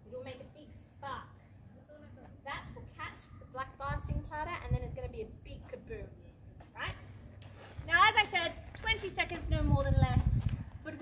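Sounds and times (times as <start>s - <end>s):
woman speaking: 7.8s - 11.0s.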